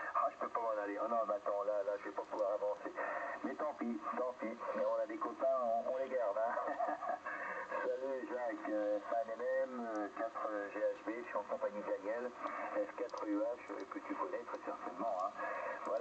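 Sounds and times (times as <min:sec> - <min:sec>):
speech over radio loudspeaker: 0:00.0 - 0:07.0, 0:07.7 - 0:16.0.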